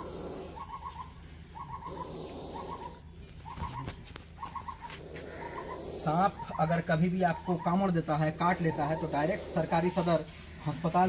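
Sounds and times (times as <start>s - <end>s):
bird trilling: 0.0s - 10.3s.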